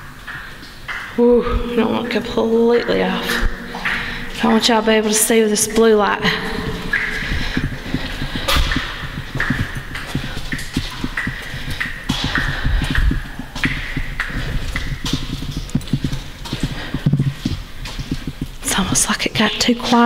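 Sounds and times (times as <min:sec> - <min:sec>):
footsteps echoing on concrete: 0:02.9 - 0:20.0.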